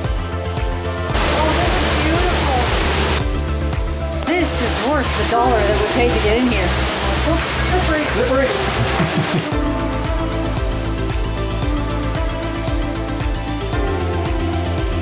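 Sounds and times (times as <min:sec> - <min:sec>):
music with steady beat: 0:00.0 - 0:15.0
waterfall roaring: 0:01.1 - 0:03.2, 0:04.3 - 0:09.6
indistinct voices: 0:01.1 - 0:03.4, 0:04.1 - 0:13.2.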